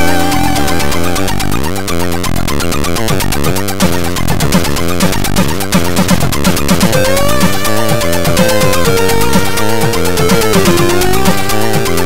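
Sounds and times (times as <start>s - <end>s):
chiptune synth tones: 0.0s - 1.9s, 6.9s - 12.0s.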